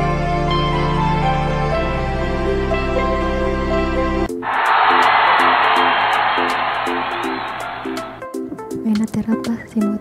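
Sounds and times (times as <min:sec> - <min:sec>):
loud rushing noise: 0:04.4 - 0:08.4.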